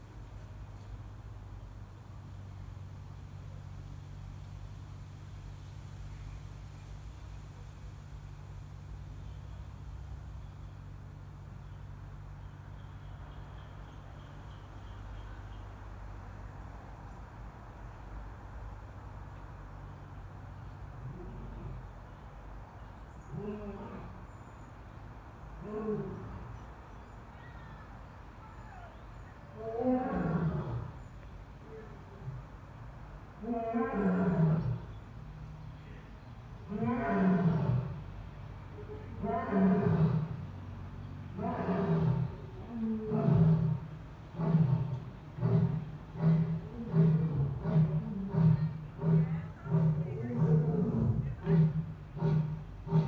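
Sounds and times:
lion roaring: 0:25.6 - 0:26.5, 0:29.6 - 0:30.9, 0:33.4 - 0:34.9, 0:36.6 - 0:38.0, 0:39.1 - 0:40.4, 0:41.3 - 0:53.0.

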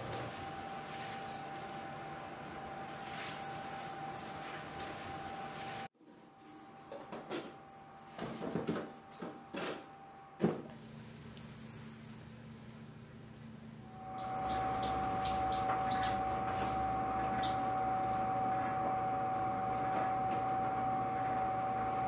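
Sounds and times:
finches chirping: 0:00.0 - 0:01.5, 0:02.3 - 0:08.2, 0:12.5 - 0:12.8, 0:13.6 - 0:18.9, 0:21.6 - 0:22.0
knocks and rustles: 0:06.9 - 0:10.8.

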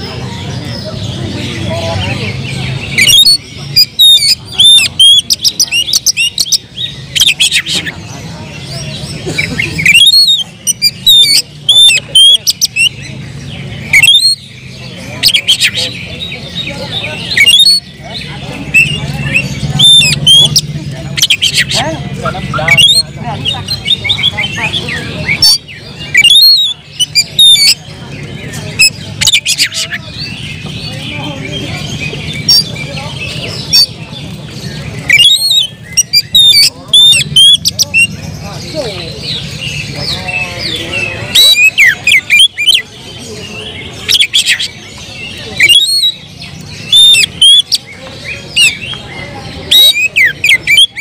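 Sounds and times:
bird singing whistles and squawks: 0:00.0 - 0:51.0.

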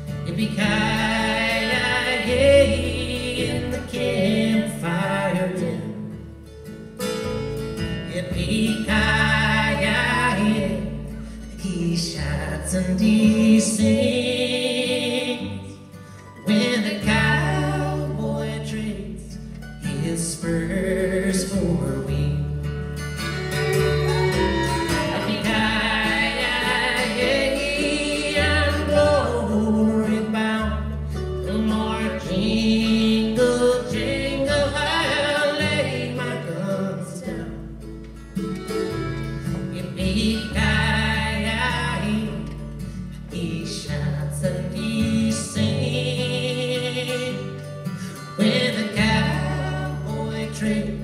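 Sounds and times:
acoustic guitar: 0:00.0 - 0:51.0
mandolin: 0:00.0 - 0:51.0
upright bass: 0:00.0 - 0:51.0
woman singing: 0:00.2 - 0:06.1, 0:08.1 - 0:15.8, 0:16.4 - 0:22.4, 0:24.0 - 0:37.7, 0:39.6 - 0:47.7, 0:48.3 - 0:51.0
fiddle: 0:21.4 - 0:42.4.

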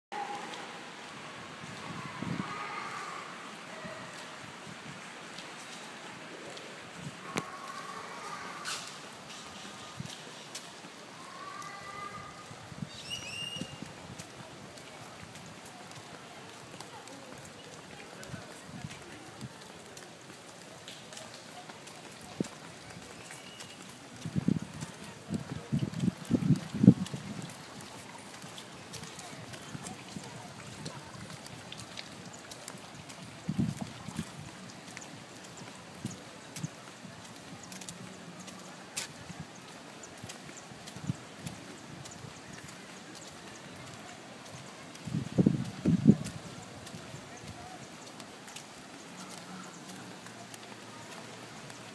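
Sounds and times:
outdoor breeze: 0:00.1 - 0:51.9.

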